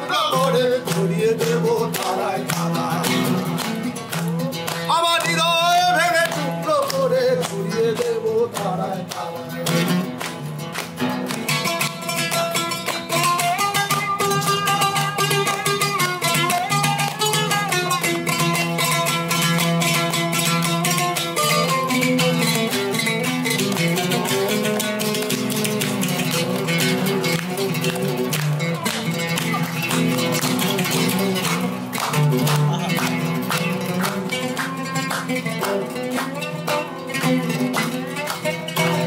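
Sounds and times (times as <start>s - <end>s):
oud fast plucked notes: 0.0s - 39.0s.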